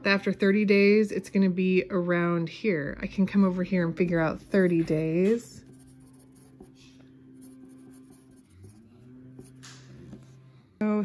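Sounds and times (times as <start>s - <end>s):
low steady hum: 0.0s - 11.0s
pencil scratching on paper: 4.4s - 10.4s.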